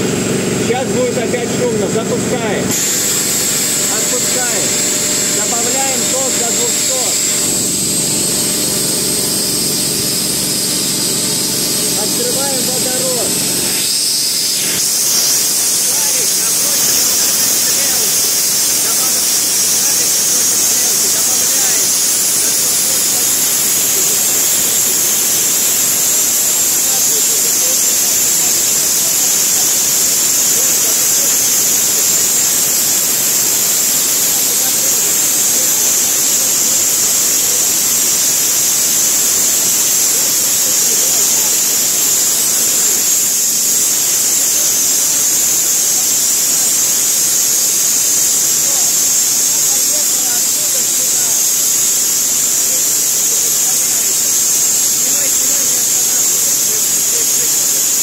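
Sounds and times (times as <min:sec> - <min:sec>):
spray gun hissing: 0:02.5 - 0:58.0.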